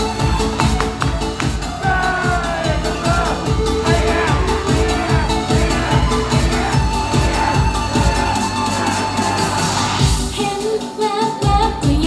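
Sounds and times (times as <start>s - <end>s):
dance track with bass beat: 0.0s - 10.5s
female voices singing: 1.8s - 12.0s.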